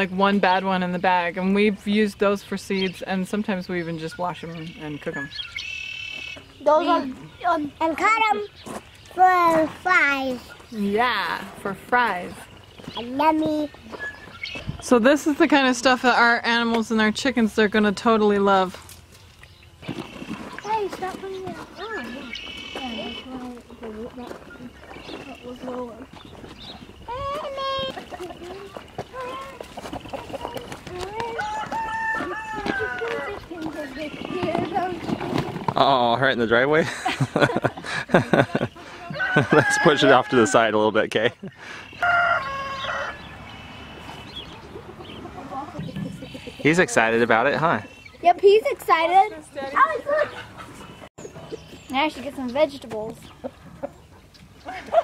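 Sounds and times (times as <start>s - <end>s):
chickens clucking: 19.8s - 55.0s
rooster crowing: 31.4s - 33.4s, 39.1s - 40.7s, 42.0s - 43.5s.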